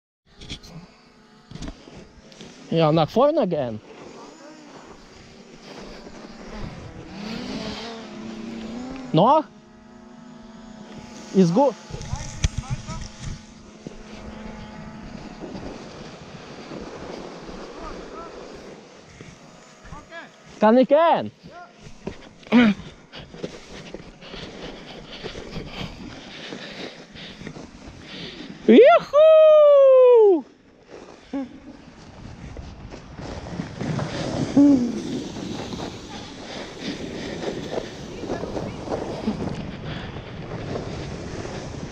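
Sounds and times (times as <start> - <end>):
sledge runners sliding on snow: 1.6 - 9.4, 11.0 - 29.1, 30.3 - 41.9
rider whooping: 28.6 - 30.6, 34.0 - 39.7.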